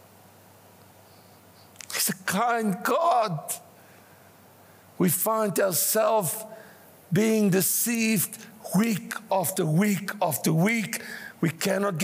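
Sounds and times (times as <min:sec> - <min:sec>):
faint steady hum: 0:00.0 - 0:12.0
man speaking: 0:01.8 - 0:03.7, 0:05.0 - 0:12.0.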